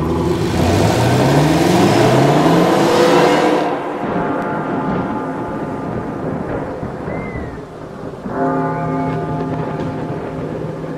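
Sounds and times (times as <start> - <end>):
car engine revving: 0.0 - 6.9.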